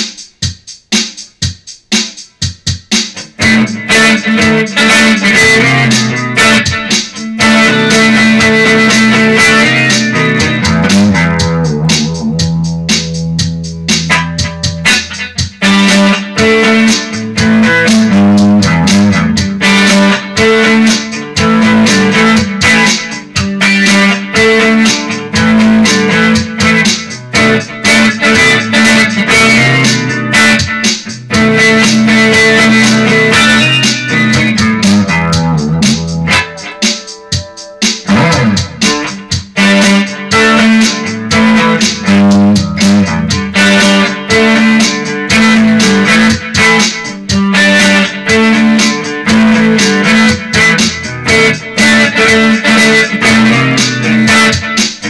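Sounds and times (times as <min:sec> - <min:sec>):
electric guitar chords and riffs: 0:02.0 - 0:55.0.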